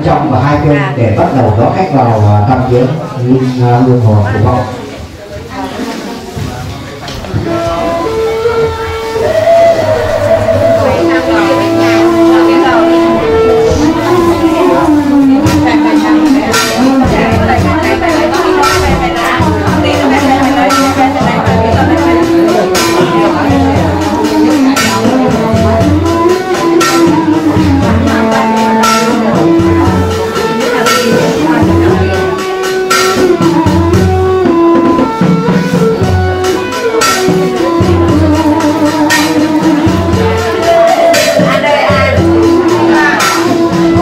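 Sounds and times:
held funeral music melody: 5.8s - 44.0s
shrill wind instrument long notes: 7.4s - 44.0s.

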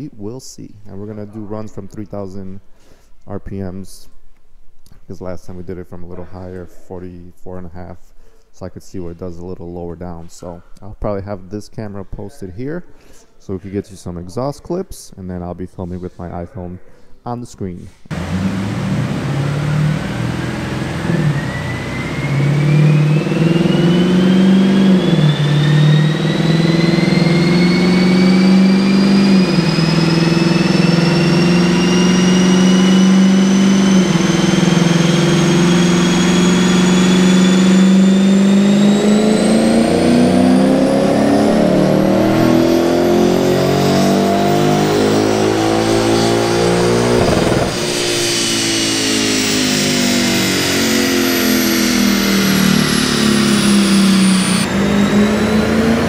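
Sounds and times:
car engine at full throttle: 18.1s - 56.0s
rising whine of rollers and tyres: 18.1s - 56.0s.

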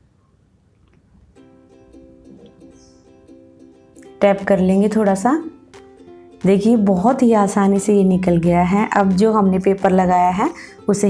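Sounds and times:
quiet background music melody: 0.3s - 11.0s.

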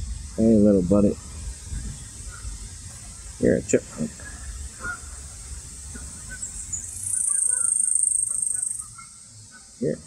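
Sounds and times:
insect buzzing trill: 0.0s - 10.0s.

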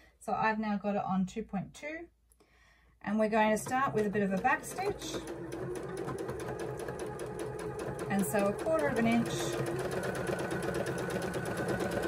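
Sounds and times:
sewing machine stitching: 3.4s - 12.0s.

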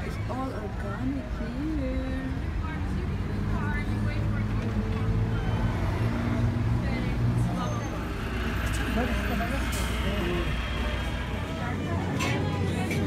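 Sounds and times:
faint voices: 0.0s - 13.0s
vehicle engine humming: 0.0s - 13.0s.

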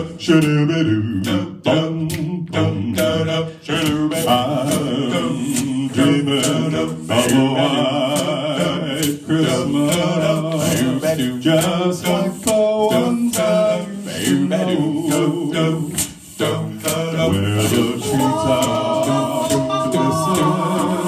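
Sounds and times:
male group singing harmony chords: 0.0s - 21.0s
vocal percussion beats: 0.0s - 21.0s.

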